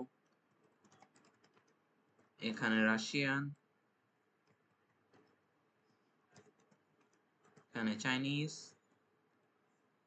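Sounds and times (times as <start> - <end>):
faint keyboard typing: 0.0 - 2.8, 3.4 - 9.3.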